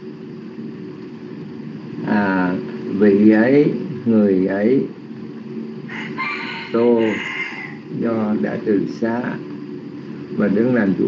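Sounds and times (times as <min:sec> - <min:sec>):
long bird call: 0:05.9 - 0:07.9.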